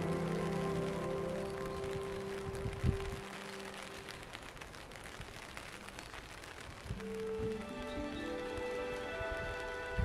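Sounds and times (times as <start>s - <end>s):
soft background music: 0.0s - 4.2s, 7.0s - 10.0s
steady rain patter: 0.0s - 10.0s.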